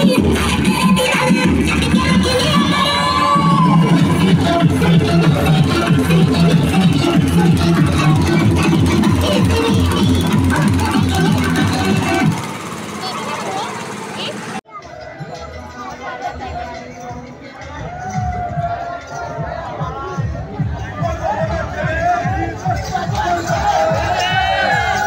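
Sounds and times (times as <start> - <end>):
dance music over loudspeakers: 0.0 - 12.4, 15.0 - 25.0.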